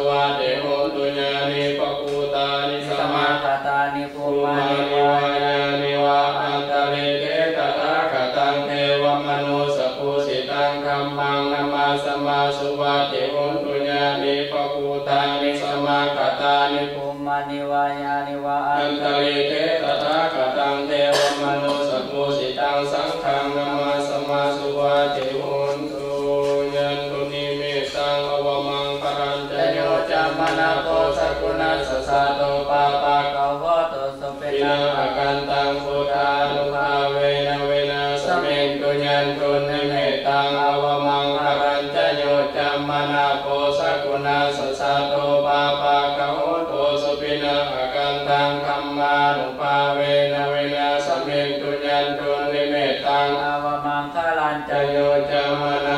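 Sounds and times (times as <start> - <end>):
monks chanting together: 0.0 - 55.9.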